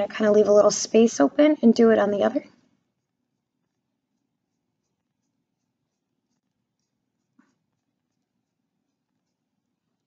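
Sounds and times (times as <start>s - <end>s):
paintbrush scratching on paper: 0.0s - 10.0s.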